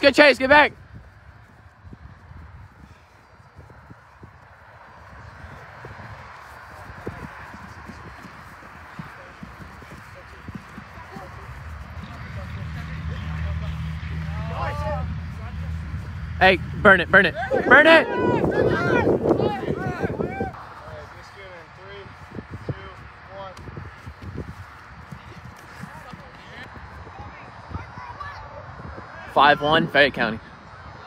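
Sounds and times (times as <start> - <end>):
running footsteps on turf: 0.3 - 14.2, 19.1 - 27.2
distant shouting: 7.2 - 22.1.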